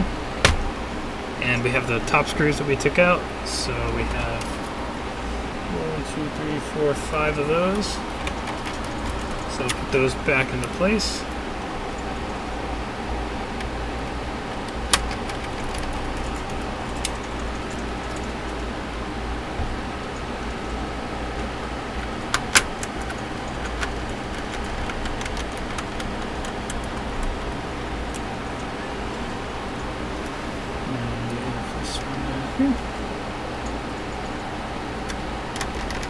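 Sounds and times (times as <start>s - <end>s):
steady low hum: 0.0s - 36.0s
sharp plastic clicks: 22.3s - 27.3s.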